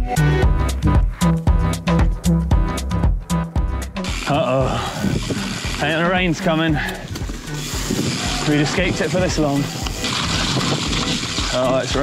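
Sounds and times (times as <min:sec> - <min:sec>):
wind hiss: 0:04.0 - 0:06.4, 0:07.0 - 0:11.6
bike tyre noise on mud: 0:04.0 - 0:12.0.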